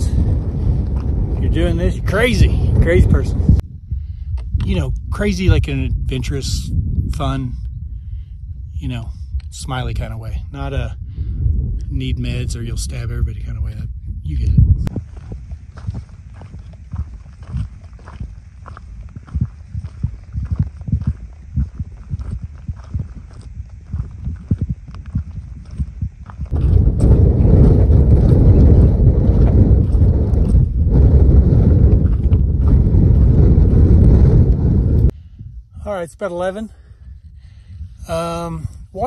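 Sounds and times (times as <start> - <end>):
wind buffeting microphone: 0.0 - 39.0
footsteps on rocky trail: 0.6 - 1.4, 14.9 - 35.2.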